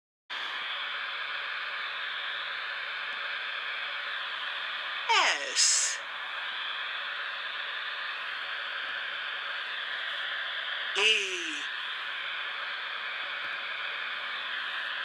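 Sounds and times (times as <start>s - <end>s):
ghostly voice calling out: 5.1s - 6.0s, 11.0s - 11.7s.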